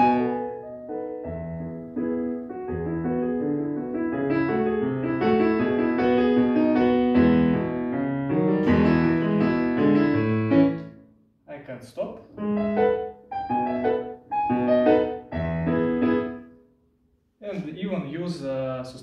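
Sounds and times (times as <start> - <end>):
digital piano melody over chords: 0.0 - 11.0, 12.4 - 16.6.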